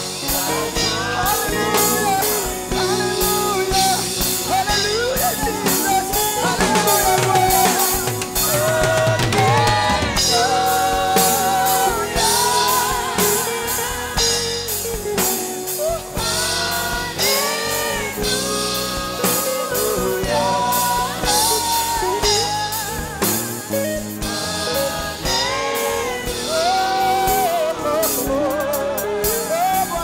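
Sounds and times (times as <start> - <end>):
band playing: 0.0 - 30.0
choir singing: 0.0 - 30.0
man singing with vibrato: 0.0 - 30.0.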